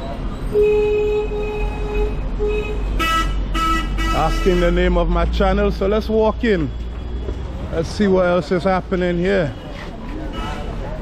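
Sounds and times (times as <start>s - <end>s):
traffic rumble: 0.0s - 11.0s
bright vehicle horn blasts: 0.5s - 4.8s
low vehicle horn: 0.5s - 4.9s.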